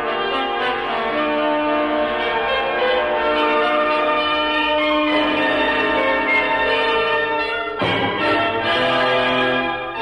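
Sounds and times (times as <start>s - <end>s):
piano: 0.0s - 10.0s.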